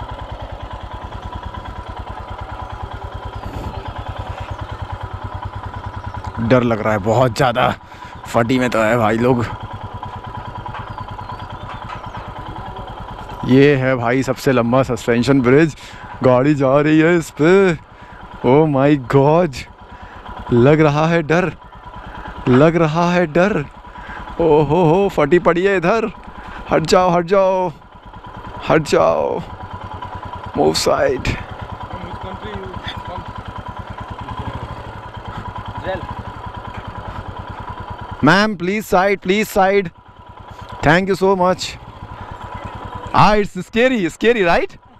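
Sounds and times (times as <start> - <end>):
motorcycle engine idling: 0.0 - 44.9.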